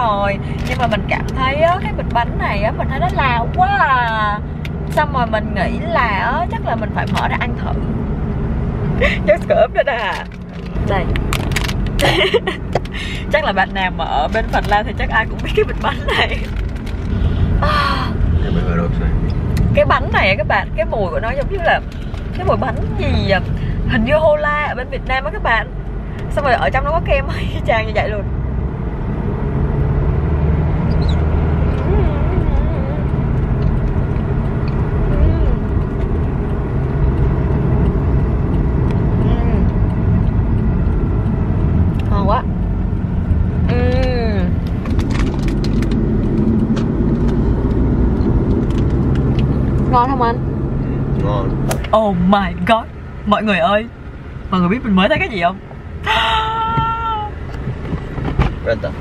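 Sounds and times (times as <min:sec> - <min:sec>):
car road and engine noise: 0:00.0 - 0:59.0
low rumbling: 0:00.0 - 0:59.0
woman squealing: 0:56.0 - 0:57.4.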